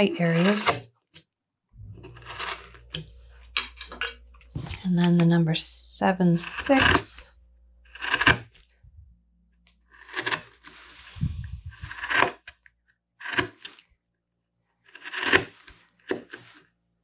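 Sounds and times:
carving gouge scraping wood: 0.0s - 0.9s, 2.1s - 3.0s, 6.3s - 7.2s, 7.8s - 8.6s, 9.9s - 12.6s, 13.2s - 13.8s, 14.8s - 16.6s.

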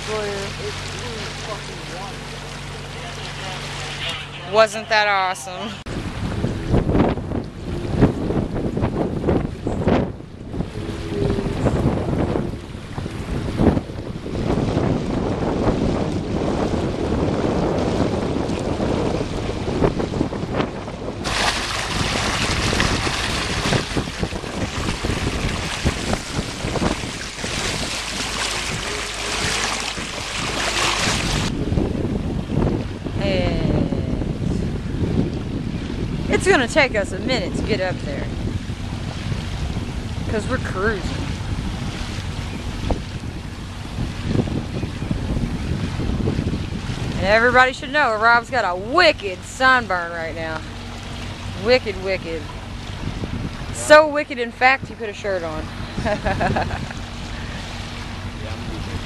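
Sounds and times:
water rushing past hull: 0.0s - 59.0s
wind buffeting microphone: 0.0s - 59.0s.

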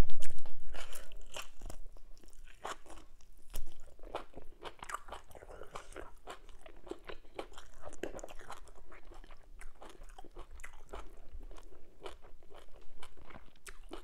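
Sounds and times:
chewing with wet mouth clicks: 0.2s - 14.0s.

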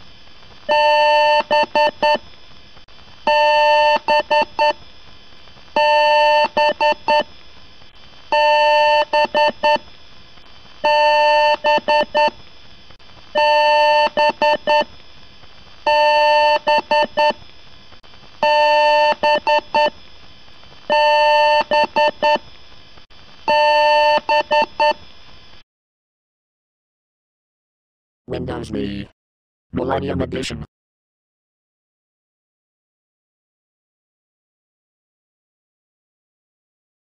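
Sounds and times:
computer power-on beeps: 10.9s - 12.3s.

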